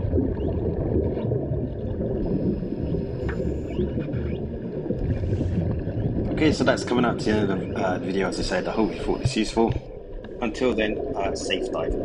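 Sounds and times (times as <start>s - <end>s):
muffled underwater rumble: 0.0s - 12.0s
faint bubble squeaks: 2.8s - 6.5s.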